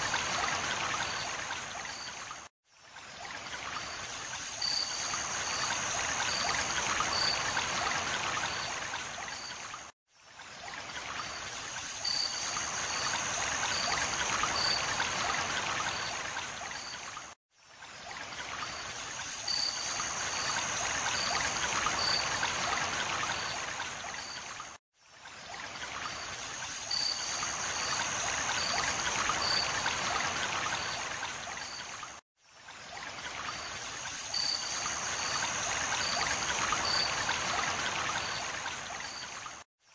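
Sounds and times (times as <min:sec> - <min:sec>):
running water trickling: 0:00.0 - 0:39.7.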